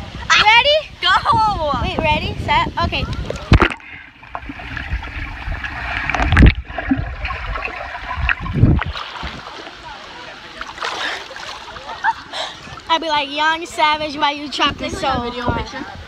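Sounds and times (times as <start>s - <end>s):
muffled underwater water noise: 0.0s - 16.0s
dull thumps underwater: 3.0s - 9.8s
crackly bubbling: 3.0s - 9.9s.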